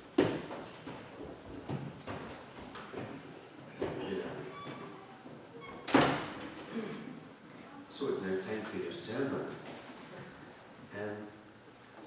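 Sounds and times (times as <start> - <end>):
door shutting with a bang: 5.8 - 6.5.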